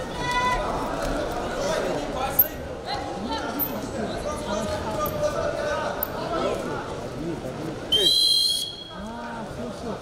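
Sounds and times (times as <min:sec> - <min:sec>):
referee's whistle blast: 0:08.0 - 0:09.0.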